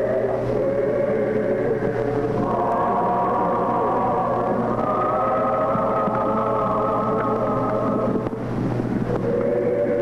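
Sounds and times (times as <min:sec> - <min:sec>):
church choir singing: 0:00.0 - 0:08.4, 0:09.1 - 0:10.0.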